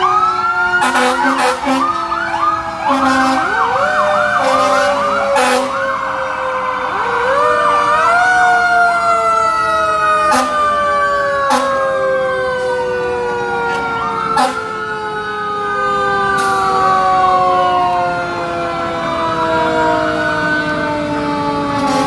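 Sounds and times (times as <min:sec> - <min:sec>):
wailing sirens: 0:00.0 - 0:22.0
yelping siren: 0:00.0 - 0:22.0.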